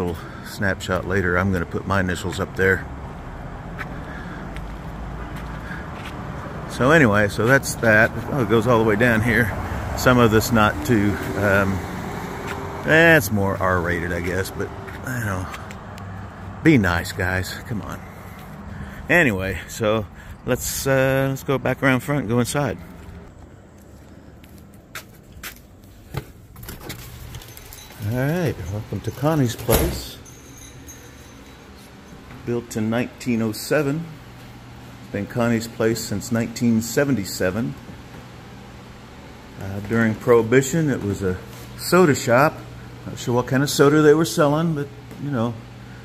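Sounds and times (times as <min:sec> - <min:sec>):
low street rumble: 0:00.0 - 0:46.0
footsteps on pavement: 0:01.1 - 0:08.9, 0:10.2 - 0:19.1, 0:22.6 - 0:29.6, 0:33.8 - 0:35.2, 0:37.8 - 0:41.8.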